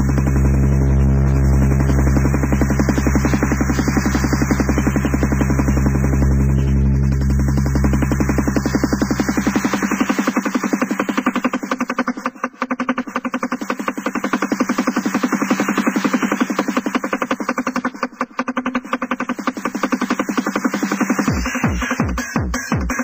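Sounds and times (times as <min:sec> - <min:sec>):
deep bass and kick drum: 0:00.0 - 0:13.5, 0:21.2 - 0:23.0
fast pulsing synth pattern: 0:00.0 - 0:23.0
techno music: 0:00.0 - 0:23.0.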